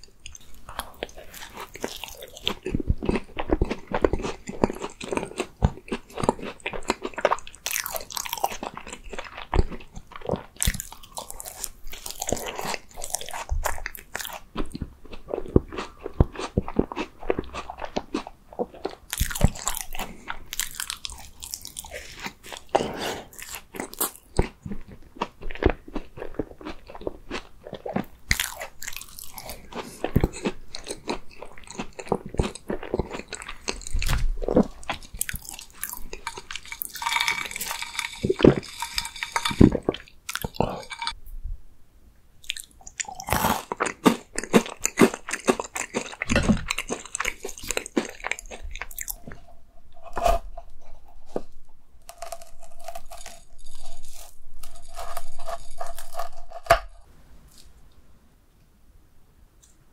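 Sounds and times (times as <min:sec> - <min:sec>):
crunching pastry: 0:00.0 - 0:41.2, 0:42.4 - 0:58.0.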